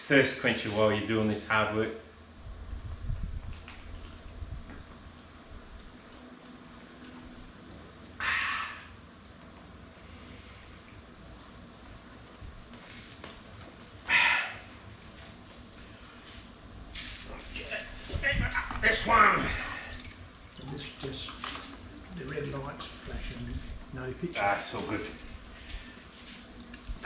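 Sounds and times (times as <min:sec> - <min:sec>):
loud breathy exhales: 0:08.2 - 0:09.0, 0:14.1 - 0:14.7.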